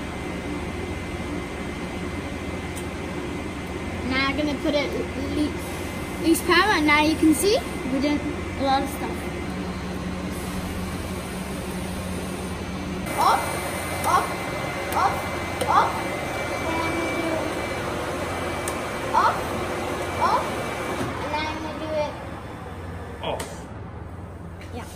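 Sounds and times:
electrical hum and fan noise: 0.0 - 24.9.

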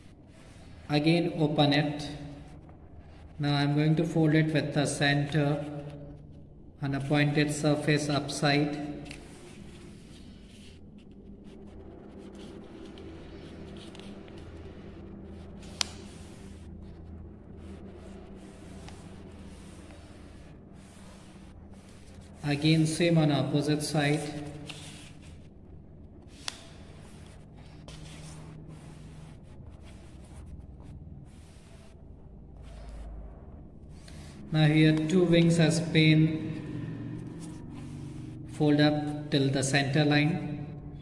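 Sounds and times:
low steady hum: 0.0 - 41.0
paper rustling and scraping: 8.7 - 25.6, 26.2 - 32.0.

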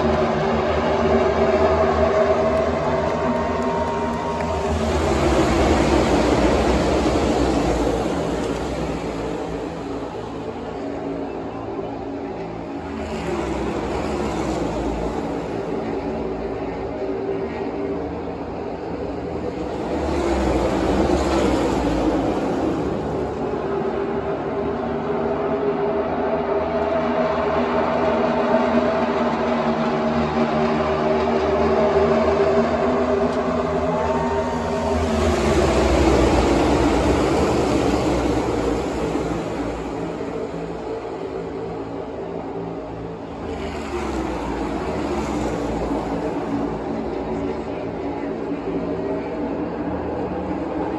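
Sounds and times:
race car engines passing: 0.0 - 50.9.

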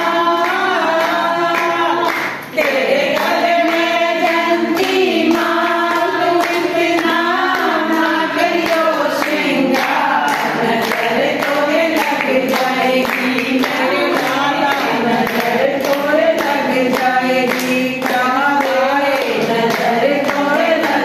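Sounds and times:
group of voices singing: 0.0 - 21.0.

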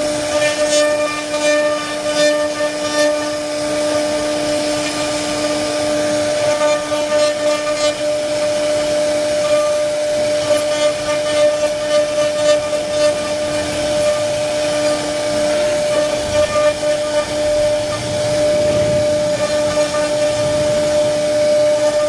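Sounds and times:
router spindle whine: 0.0 - 22.0
bit rasping into wood: 0.3 - 22.0.

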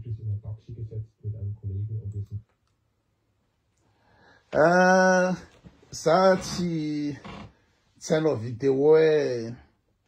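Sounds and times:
television news speech: 4.5 - 7.4.

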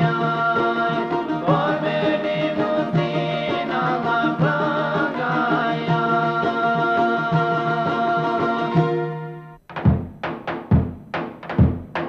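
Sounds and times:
held folk music tones: 0.0 - 12.0
drum beating heavy low beats: 9.6 - 12.0.

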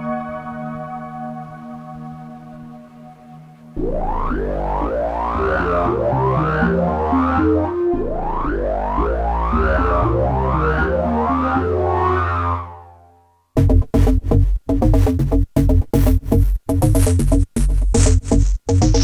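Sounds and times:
synthesizer bass line with filter sweeps: 0.0 - 19.0.

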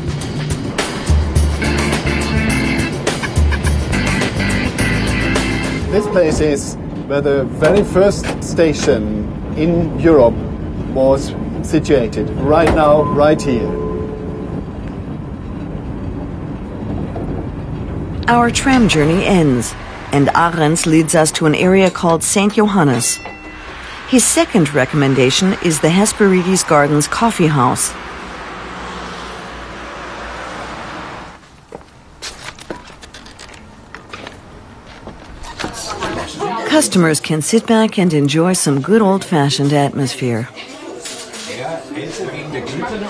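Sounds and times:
tram rumbling: 0.0 - 40.4
road noise: 0.0 - 43.0
indistinct voices: 18.2 - 28.4.

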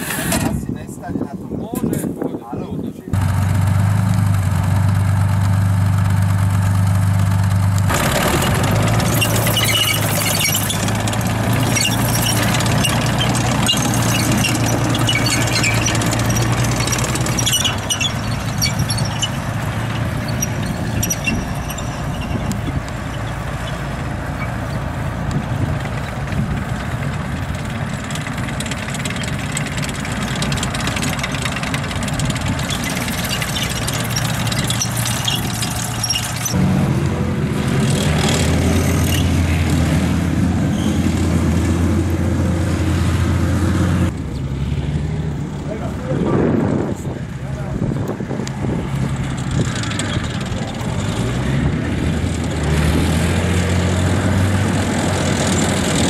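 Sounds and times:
diesel engine droning: 3.1 - 56.0
tracks rattling and clanking: 3.2 - 42.8, 44.1 - 56.0.

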